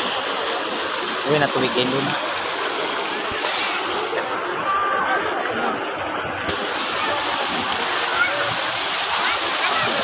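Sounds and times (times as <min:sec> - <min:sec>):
fountain jets splashing: 0:00.0 - 0:10.0
crowd chatter: 0:02.7 - 0:10.0.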